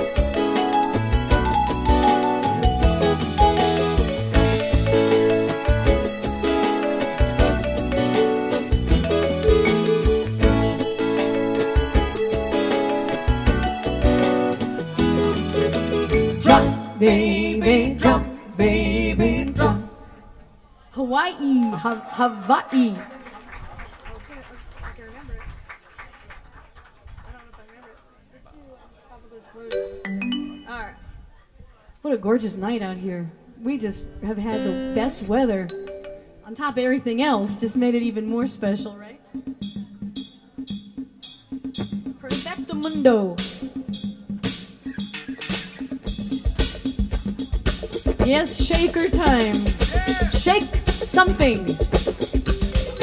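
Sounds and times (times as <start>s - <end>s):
drum machine beat: 0.0s - 16.8s, 39.4s - 53.0s
held keyboard note: 0.0s - 17.0s
murmur of voices: 20.0s - 32.0s
yelping voice calls: 49.7s - 50.4s.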